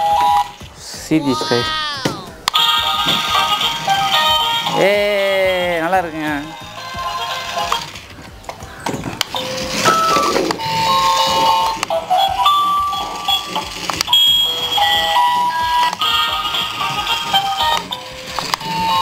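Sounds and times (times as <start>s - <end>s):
electronic beeping melody: 8.8s - 19.0s.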